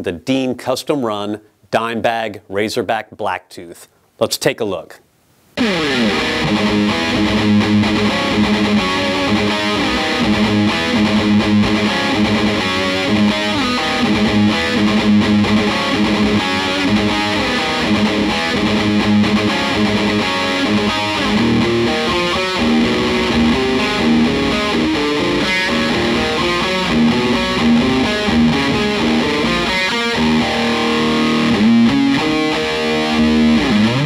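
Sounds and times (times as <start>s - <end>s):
distorted electric guitar riffs: 5.6s - 34.0s.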